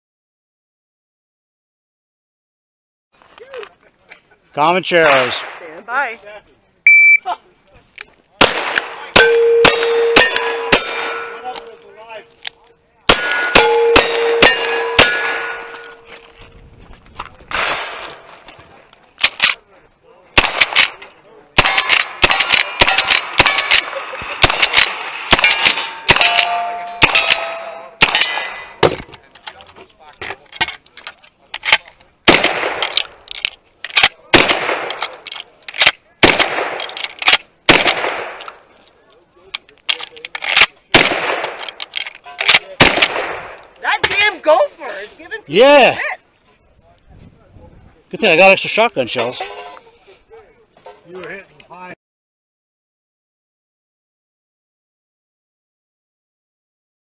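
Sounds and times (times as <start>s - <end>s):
shot timer beep: 6.9s - 7.2s
steel targets ringing: 9.1s - 11.9s, 13.1s - 16.3s, 25.0s - 28.8s.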